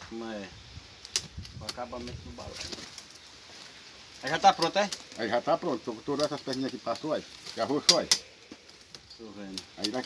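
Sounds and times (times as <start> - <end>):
machete cutting wicker stems: 6.1 - 10.0.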